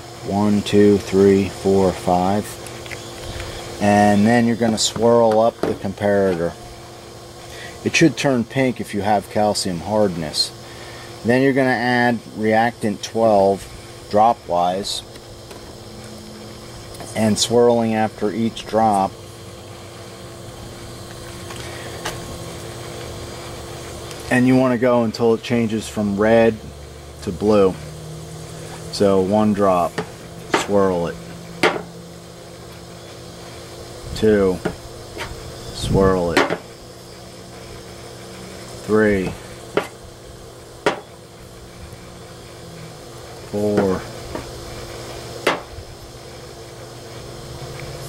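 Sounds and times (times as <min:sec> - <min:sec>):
constant tone: 0:00.0 - 0:48.0
machine hum: 0:00.0 - 0:48.0.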